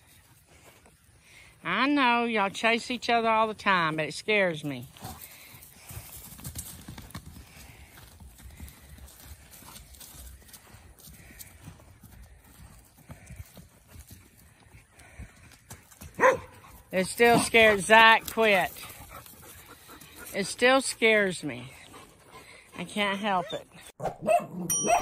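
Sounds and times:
hoofbeats on grass: 0:00.0 - 0:23.8
woman speaking: 0:01.6 - 0:04.9, 0:16.9 - 0:18.9, 0:20.3 - 0:21.8, 0:22.8 - 0:23.8.

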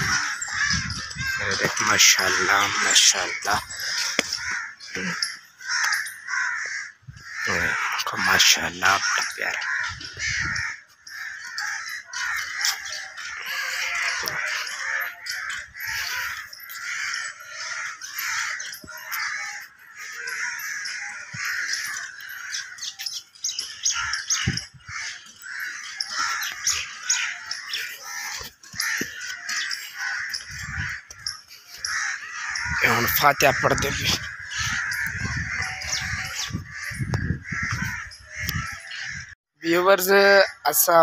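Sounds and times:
crows cawing: 0:00.0 - 0:41.0
other birds calling: 0:00.0 - 0:41.0.

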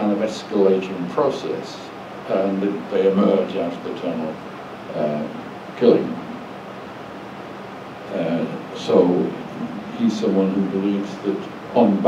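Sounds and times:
faint low hum: 0:00.0 - 0:12.0
steady hiss: 0:00.0 - 0:12.0.

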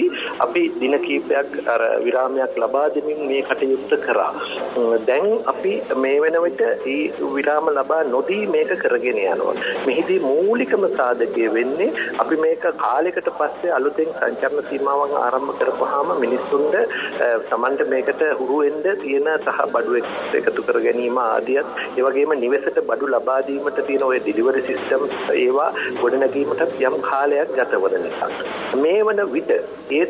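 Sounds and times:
person talking: 0:00.0 - 0:30.0.

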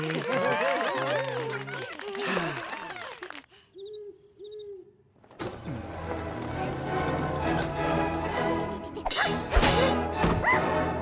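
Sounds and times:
owl hooting: 0:03.8 - 0:05.0.

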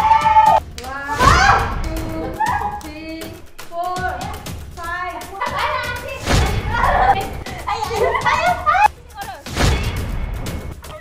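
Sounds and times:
women shouting and squealing: 0:00.0 - 0:04.4, 0:05.1 - 0:09.0
women laughing: 0:02.0 - 0:02.9, 0:06.8 - 0:09.0.

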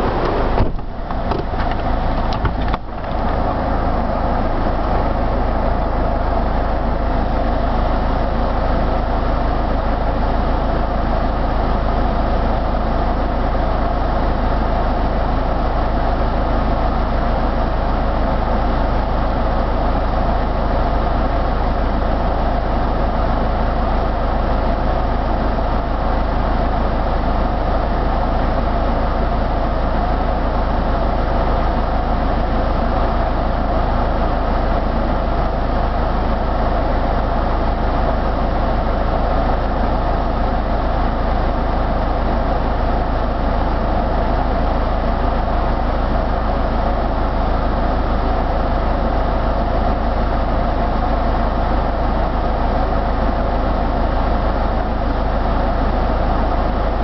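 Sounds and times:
car engine idling: 0:00.0 - 0:18.5
brief knocks: 0:00.2 - 0:03.2.

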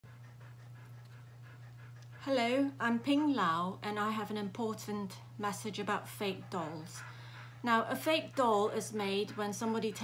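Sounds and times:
dog panting: 0:00.0 - 0:10.0
steady low hum: 0:00.0 - 0:10.0.

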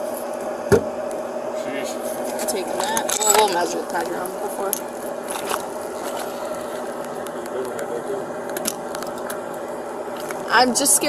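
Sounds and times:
steady hum: 0:00.0 - 0:11.0
sharp knock of object: 0:00.7 - 0:00.9
rummaging in handbag: 0:05.2 - 0:06.8.

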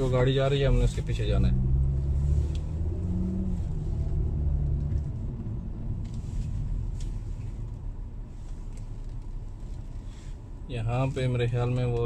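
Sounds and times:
car engine and tyre noise: 0:00.0 - 0:12.0.

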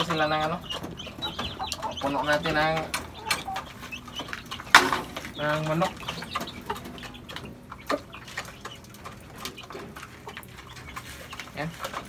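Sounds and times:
chickens pecking plastic cups: 0:00.0 - 0:12.0.

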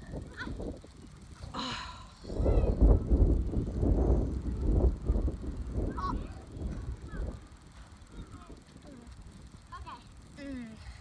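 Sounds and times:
wind buffeting microphone: 0:00.0 - 0:10.4.

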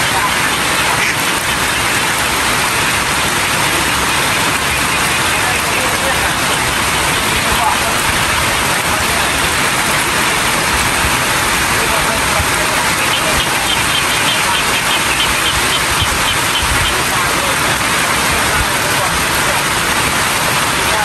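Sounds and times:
steady rain falling: 0:00.0 - 0:21.0.

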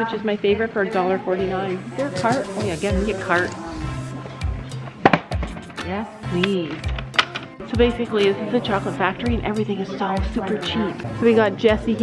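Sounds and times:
music with steady beat: 0:00.8 - 0:12.0.

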